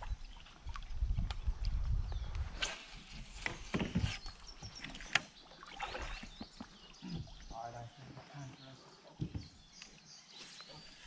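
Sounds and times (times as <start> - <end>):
water sounds: 0.0 - 11.0.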